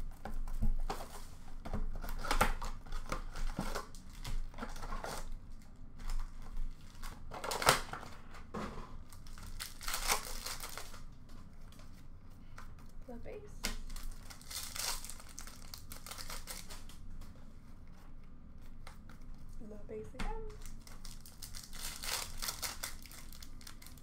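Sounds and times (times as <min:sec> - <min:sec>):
wrapper crinkling and tearing: 0:01.9 - 0:08.2, 0:09.0 - 0:11.1, 0:13.7 - 0:17.1, 0:20.5 - 0:24.0.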